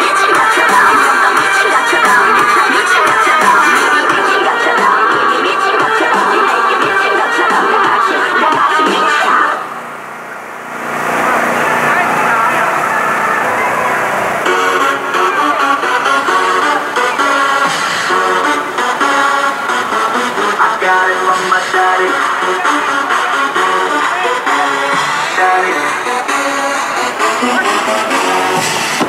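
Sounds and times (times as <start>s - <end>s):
loud amplified dance music: 0.0s - 9.8s, 11.5s - 29.0s.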